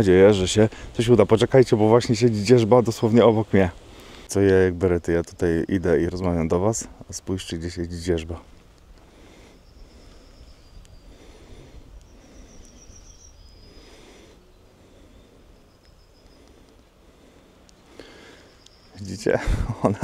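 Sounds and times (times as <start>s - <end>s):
high chirps and trills: 17.6s - 19.4s.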